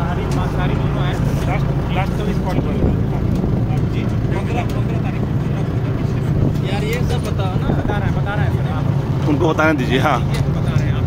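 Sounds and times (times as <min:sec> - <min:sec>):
people talking: 0:00.0 - 0:11.0
vehicle engine and road rumble: 0:00.0 - 0:11.0.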